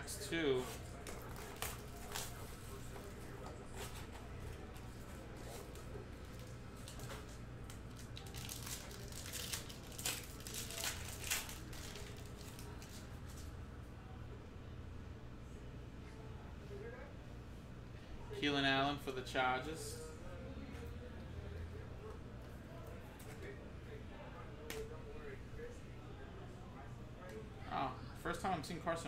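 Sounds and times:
foil pack tearing and crinkling: 7.9s - 13.0s.

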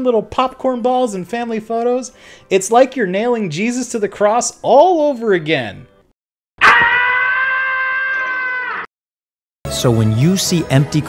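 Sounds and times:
high-pitched scream: 6.6s - 8.9s.

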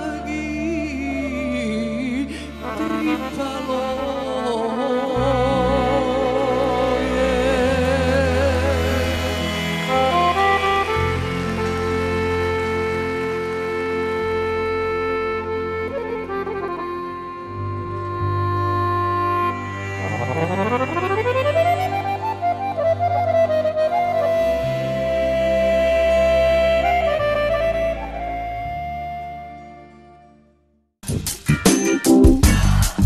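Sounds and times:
piano accordion melody: 0.0s - 30.1s, 31.5s - 32.7s
bass guitar: 5.1s - 29.9s, 31.0s - 33.0s.

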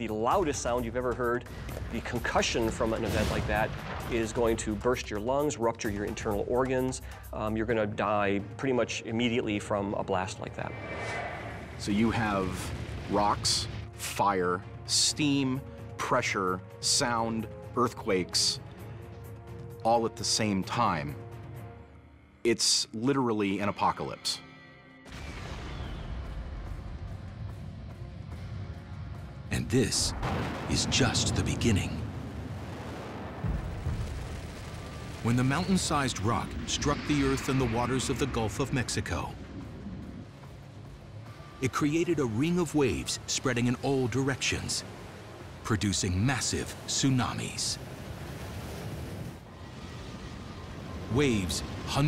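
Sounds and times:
dramatic orchestral score: 34.8s - 48.4s
ocean wave surging: 42.1s - 52.0s.

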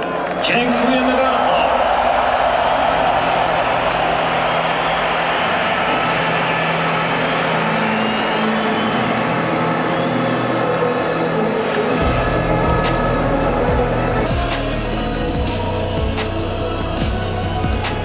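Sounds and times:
music over public address: 0.0s - 18.0s
stadium crowd noise: 0.0s - 18.0s
deep bass sound: 12.0s - 18.0s.

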